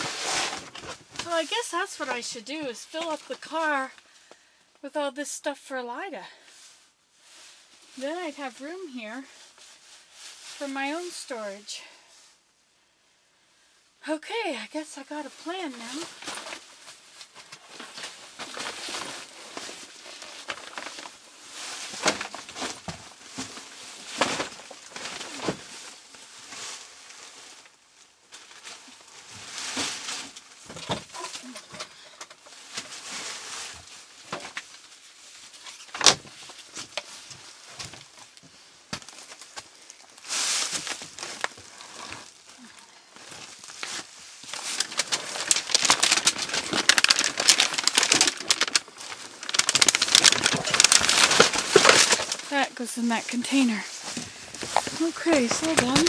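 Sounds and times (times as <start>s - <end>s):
plastic bags and tarp rustling: 0.0s - 4.4s, 6.2s - 12.5s, 14.5s - 56.0s.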